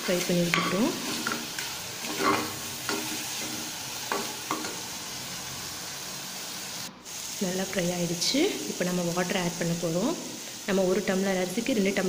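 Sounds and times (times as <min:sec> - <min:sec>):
vegetables sizzling in oil: 0:00.0 - 0:12.0
metal ladle scraping pot: 0:00.5 - 0:04.7.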